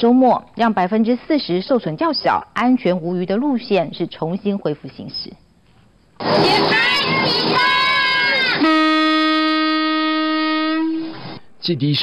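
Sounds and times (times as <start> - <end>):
train horn long blast: 6.2 - 11.4
children shouting: 6.4 - 8.6.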